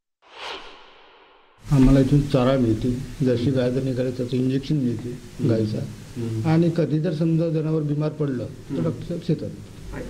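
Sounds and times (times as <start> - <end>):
man speaking: 1.7 - 10.0.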